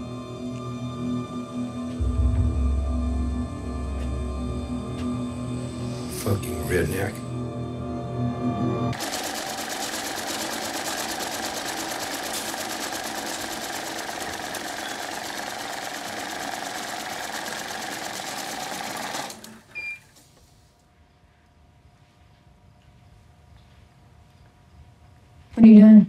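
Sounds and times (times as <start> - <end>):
machine clattering: 9.0 - 19.6.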